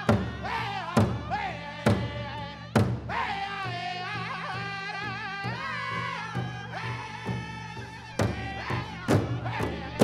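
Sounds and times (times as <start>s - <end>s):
group singing high-pitched: 0.0s - 10.0s.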